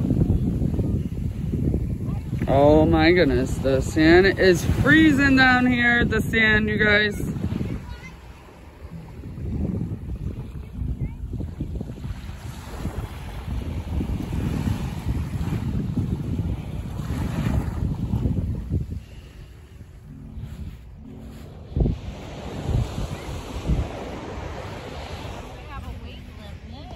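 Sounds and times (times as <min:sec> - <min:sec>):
small waves washing onto sand: 0:00.0 - 0:26.9
wind buffeting microphone: 0:00.0 - 0:26.9.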